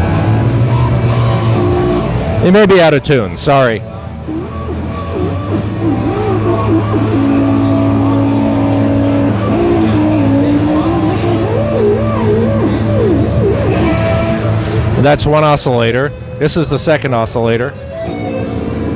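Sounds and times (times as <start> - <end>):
steady low drone: 0.0 - 18.9
synthesizer tone sliding and wobbling: 0.0 - 18.9.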